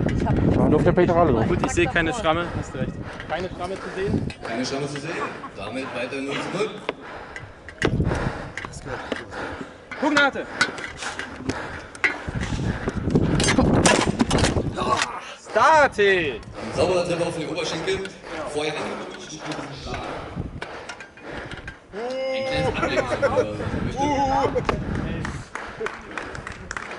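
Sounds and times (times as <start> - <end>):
people talking: 22.0 - 26.4.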